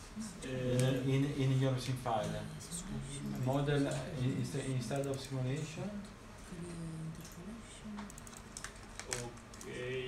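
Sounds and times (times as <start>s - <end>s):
computer keyboard keys clicking: 4.9s - 5.3s, 8.0s - 9.7s.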